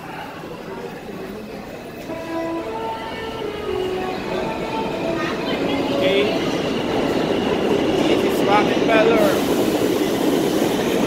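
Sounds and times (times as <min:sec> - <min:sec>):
subway train motors whining: 0:00.0 - 0:11.0
train rumble: 0:00.0 - 0:11.0.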